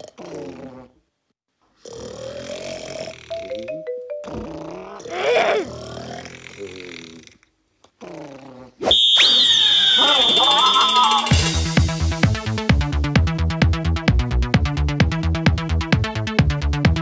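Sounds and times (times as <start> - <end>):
cartoon character snoring: 0.0 - 1.0, 1.8 - 8.8
shrill whistle blast: 8.8 - 11.5
upbeat electronic dance music: 9.9 - 13.3.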